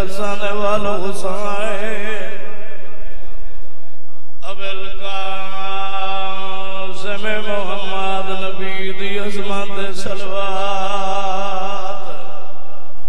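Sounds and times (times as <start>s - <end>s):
man chanting into a microphone: 0.0s - 3.4s, 4.4s - 13.0s.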